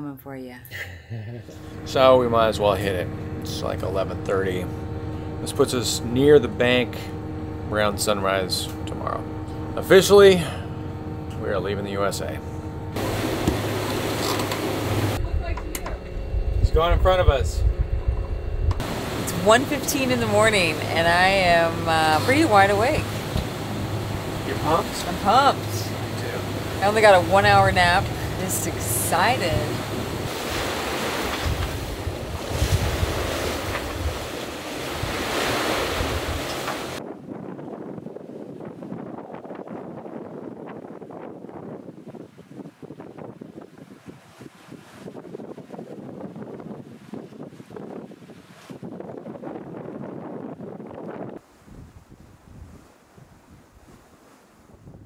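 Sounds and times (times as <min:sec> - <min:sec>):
boat engine rumble: 0:00.0 - 0:55.0
sea water rushing: 0:01.5 - 0:54.9
wind buffeting microphone: 0:01.6 - 0:55.0.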